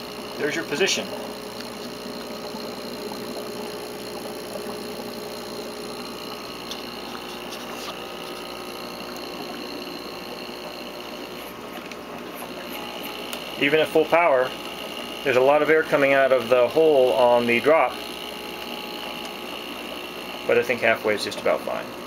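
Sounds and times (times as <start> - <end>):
air pump humming: 0.0 - 22.0.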